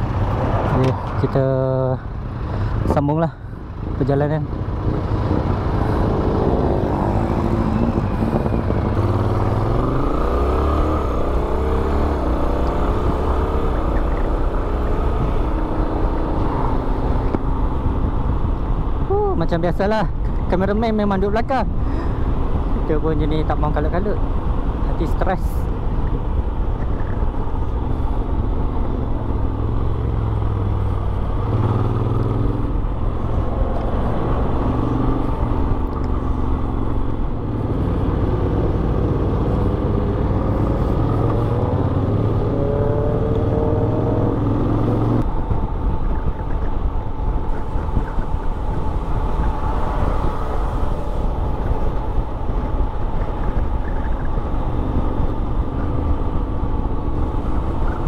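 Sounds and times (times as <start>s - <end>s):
wind noise on microphone: 4.5s - 58.0s.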